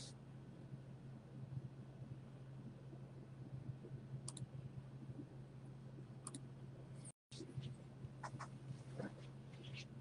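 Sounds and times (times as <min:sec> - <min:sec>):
faint steady low hum: 0:00.0 - 0:10.0.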